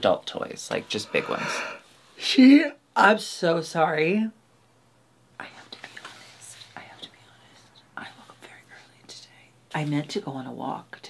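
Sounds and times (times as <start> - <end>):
person whispering: 0.8 - 1.8.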